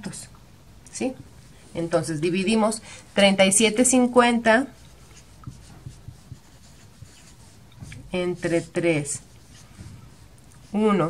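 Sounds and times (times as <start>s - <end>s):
marker writing on whiteboard: 4.7s - 11.0s.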